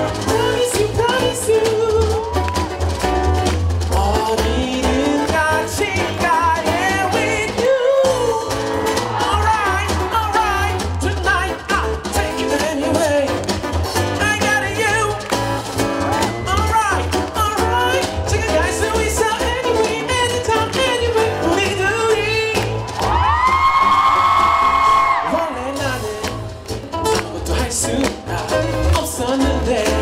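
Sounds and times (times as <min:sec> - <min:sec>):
man singing: 0:00.0 - 0:02.8, 0:03.8 - 0:15.3, 0:16.2 - 0:22.8, 0:24.8 - 0:30.0
acoustic guitar: 0:00.0 - 0:30.0
drums: 0:00.0 - 0:30.0
electric bass: 0:00.0 - 0:30.0.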